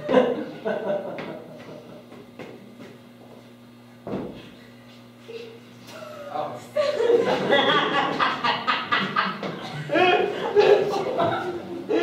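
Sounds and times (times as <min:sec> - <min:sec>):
faint knocks on stage floor: 0:04.0 - 0:04.5
thump on stage floor: 0:04.0 - 0:04.5.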